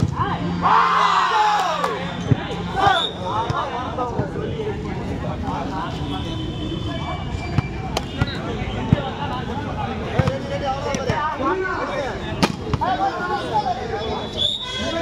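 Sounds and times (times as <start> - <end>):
people talking and calling out: 0.0 - 15.0.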